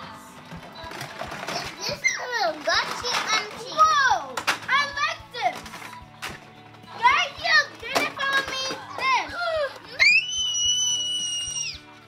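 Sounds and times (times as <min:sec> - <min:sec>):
children's voices and squeals: 0:01.8 - 0:05.5, 0:07.0 - 0:11.8.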